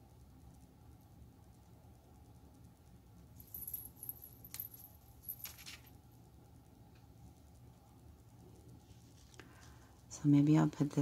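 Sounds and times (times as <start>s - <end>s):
small clicks and jingles: 2.2s - 6.0s.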